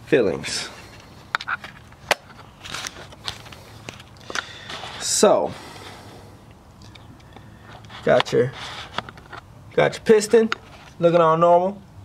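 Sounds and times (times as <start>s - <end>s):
camera handling noise: 1.0s - 5.0s, 6.8s - 9.5s.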